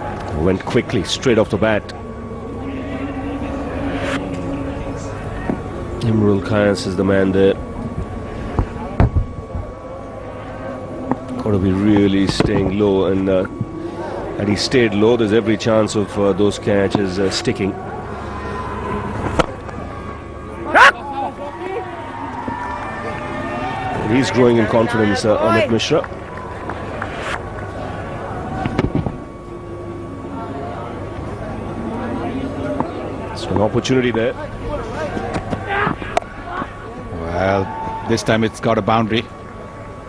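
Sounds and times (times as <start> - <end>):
faint crowd noise: 0.0 - 40.0
steady low drone: 0.0 - 40.0.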